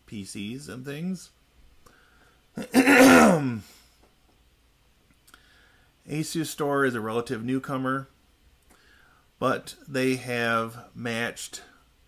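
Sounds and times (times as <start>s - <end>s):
man clearing his throat: 2.6s - 3.8s.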